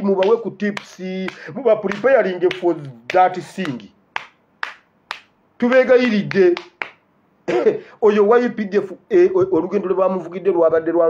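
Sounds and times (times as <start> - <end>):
man talking animatedly: 0.0 - 4.0, 5.6 - 6.8, 7.7 - 11.0
sharp snaps: 0.2 - 7.1.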